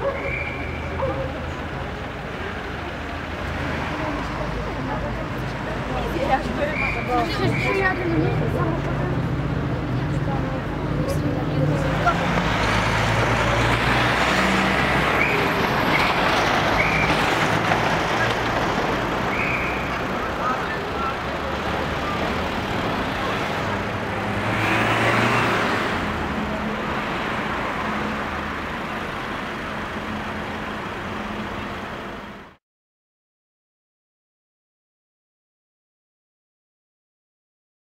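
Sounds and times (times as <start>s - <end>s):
faint voices: 0.0s - 27.1s
road traffic: 0.0s - 32.6s.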